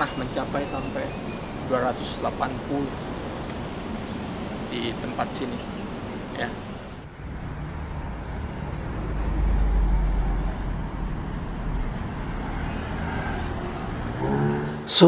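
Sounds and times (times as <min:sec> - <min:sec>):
traffic hum: 0:00.0 - 0:15.0
heavy vehicle driving past: 0:00.4 - 0:15.0.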